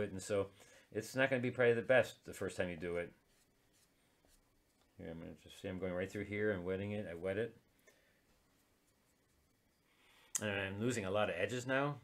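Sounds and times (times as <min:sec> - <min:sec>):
brush rubbing on wet paper: 0:02.6 - 0:06.1, 0:08.3 - 0:09.9.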